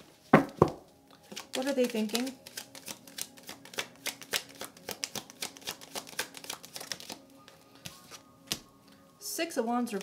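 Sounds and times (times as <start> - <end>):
cards being shuffled: 0.4 - 8.6.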